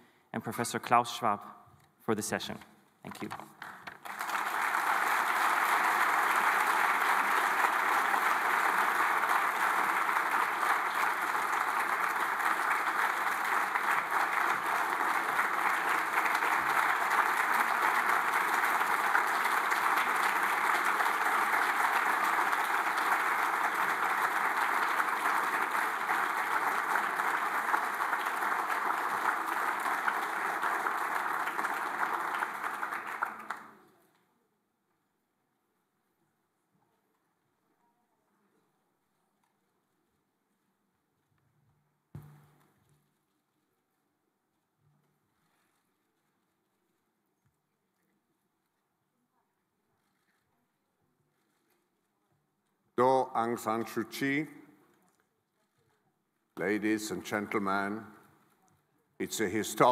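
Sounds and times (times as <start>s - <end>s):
large audience applauding: 3.6s - 33.9s, 56.6s - 58.3s, 59.2s - 59.9s.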